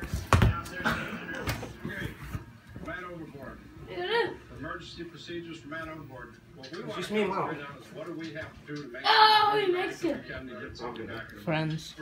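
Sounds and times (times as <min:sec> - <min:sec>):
people's voices in a room: 0:00.0 - 0:12.0.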